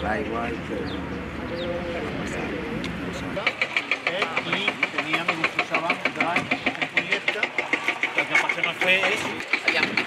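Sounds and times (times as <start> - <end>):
people talking: 0.0 - 10.0
diesel engine knocking: 3.3 - 10.0.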